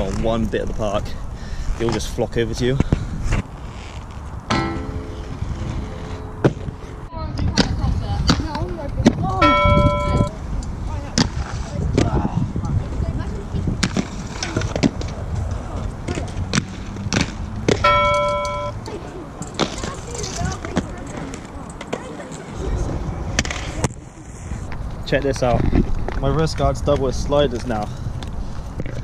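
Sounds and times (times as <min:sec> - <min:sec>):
skate wheels rolling on concrete: 0:00.0 - 0:29.0
steady held tone: 0:04.5 - 0:07.2, 0:09.3 - 0:10.4, 0:17.8 - 0:18.8.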